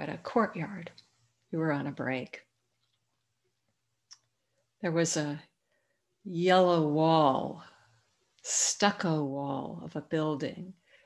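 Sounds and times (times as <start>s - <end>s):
woman speaking: 0.0s - 2.5s, 4.8s - 5.5s, 6.3s - 7.7s, 8.4s - 10.8s.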